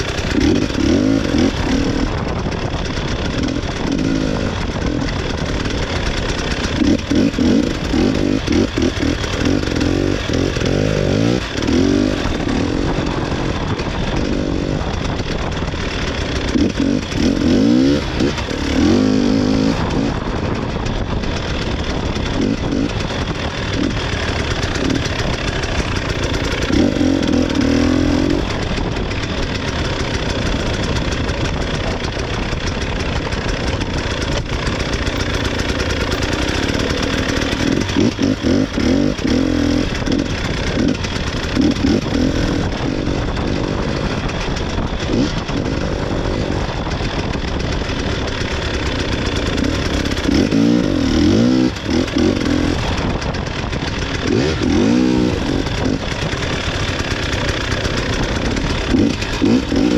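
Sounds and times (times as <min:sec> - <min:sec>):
motorcycle engine running steadily: 0:00.0 - 0:59.9.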